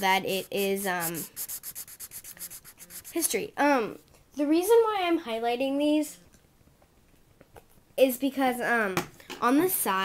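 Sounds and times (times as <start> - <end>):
marker scribbling on paper: 0.0 - 3.4.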